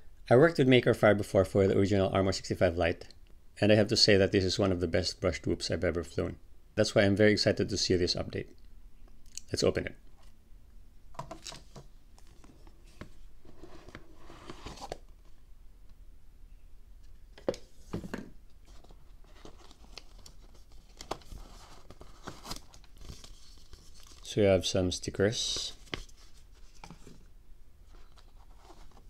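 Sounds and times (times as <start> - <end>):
paper and card rustling: 11.2 - 15.3, 17.4 - 24.4, 25.3 - 29.0.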